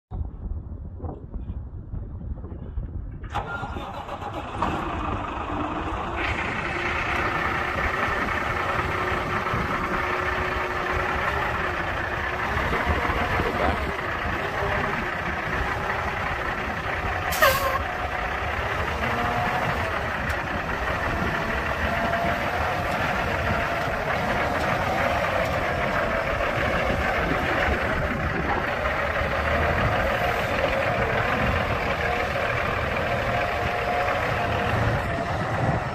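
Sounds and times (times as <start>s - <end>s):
diesel truck engine idling: 3.3s - 35.9s.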